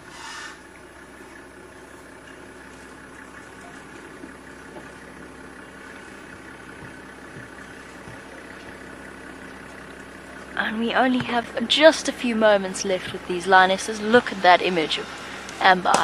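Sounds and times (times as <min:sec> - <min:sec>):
vehicle engine idling: 0:00.0 - 0:16.0.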